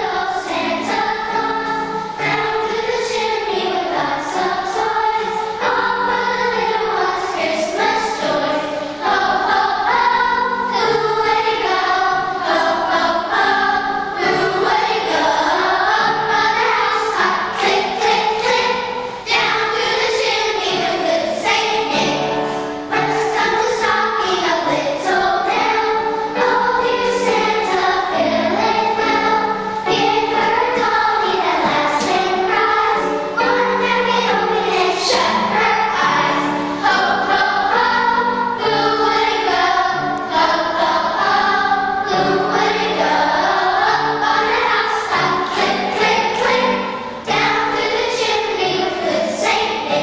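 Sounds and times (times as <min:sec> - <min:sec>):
children's choir singing: 0:00.0 - 0:50.0.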